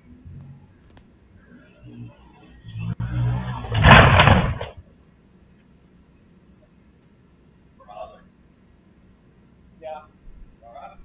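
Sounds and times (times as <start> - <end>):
dirt bike engine revving: 1.8 - 4.8
crash: 2.8 - 4.8.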